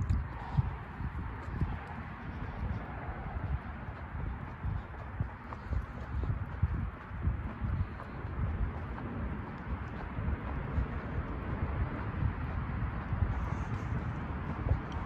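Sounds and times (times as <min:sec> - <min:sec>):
footsteps on concrete: 0:00.0 - 0:15.0.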